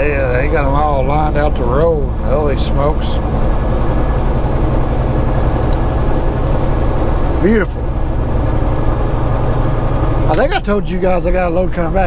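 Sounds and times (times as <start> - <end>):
diesel truck engine droning: 0.0 - 12.0.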